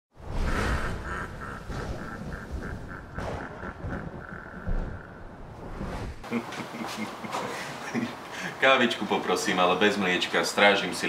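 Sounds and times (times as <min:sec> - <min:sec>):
low rumble: 0:00.2 - 0:06.2.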